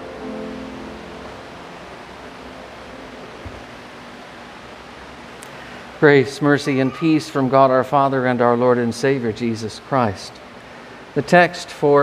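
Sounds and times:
keyboard hymn accompaniment: 0.0 - 12.0
room noise hiss: 0.0 - 12.0.

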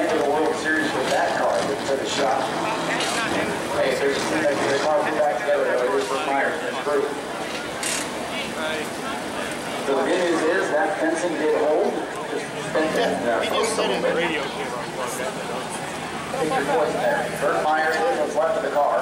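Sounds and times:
indistinct voices talking: 0.0 - 19.0
steady background noise: 0.0 - 19.0.

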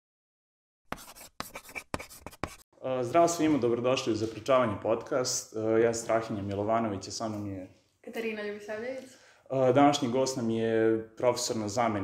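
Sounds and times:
chalk tapping: 0.9 - 2.6
chalk scratching on chalkboard: 0.9 - 2.7.

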